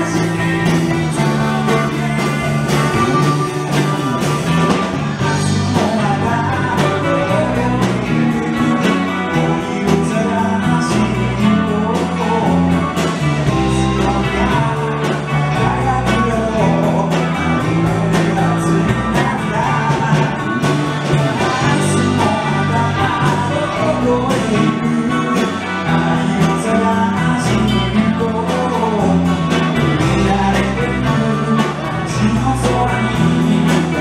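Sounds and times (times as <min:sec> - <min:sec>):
bass guitar: 0:00.0 - 0:34.0
drum kit beat: 0:00.0 - 0:34.0
electric guitars: 0:00.0 - 0:34.0
lead vocal singing: 0:00.0 - 0:34.0.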